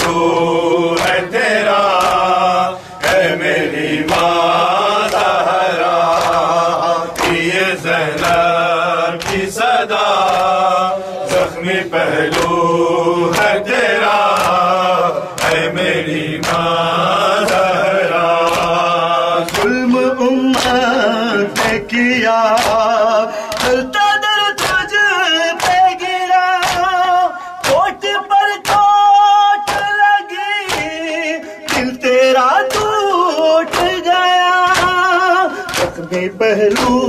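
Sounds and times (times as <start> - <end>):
men chanting a lament: 0.0 - 37.0.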